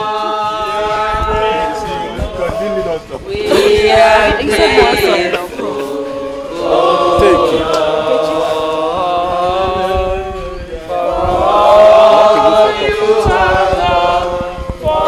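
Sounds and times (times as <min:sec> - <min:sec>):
group singing unaccompanied: 0:00.0 - 0:15.0.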